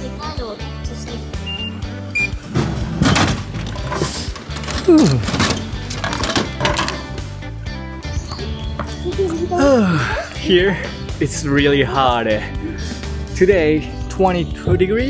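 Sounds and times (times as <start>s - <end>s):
background music: 0.0s - 15.0s
card reader beeps: 1.4s - 2.4s.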